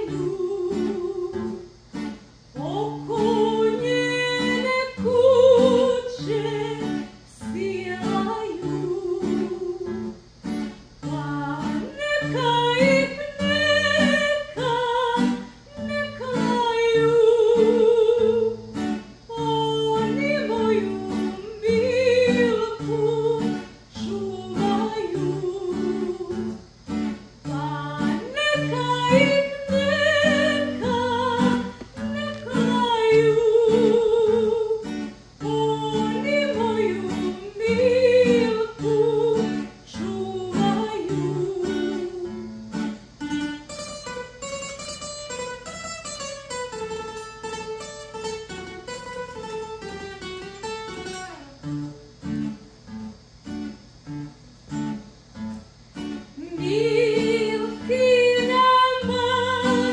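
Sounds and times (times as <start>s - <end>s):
woman singing: 0.0s - 1.7s, 2.5s - 10.2s, 11.0s - 26.6s, 27.4s - 42.8s, 56.3s - 59.9s
acoustic guitar: 0.0s - 59.9s.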